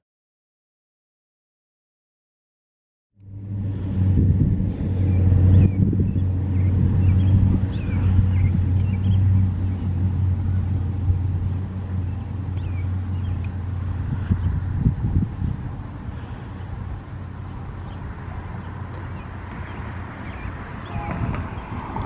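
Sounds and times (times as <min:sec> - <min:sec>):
diesel locomotive engine drone: 0:03.2 - 0:22.0.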